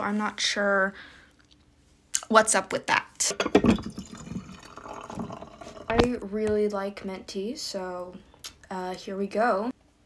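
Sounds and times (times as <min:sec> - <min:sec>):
tea trickling into ceramic mug: 0:03.4 - 0:06.1.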